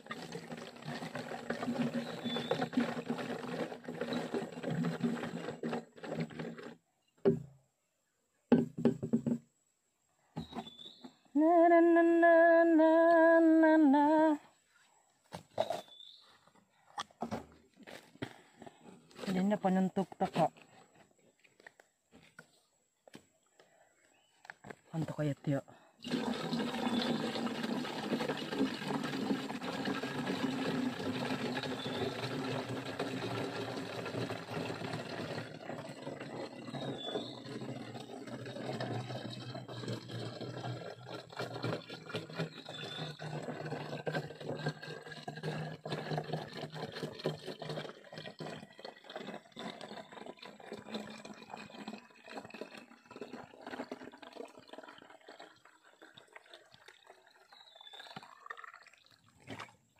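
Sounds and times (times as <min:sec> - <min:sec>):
liquid pouring into bottle: 0:00.0 - 0:07.4, 0:26.0 - 0:59.9.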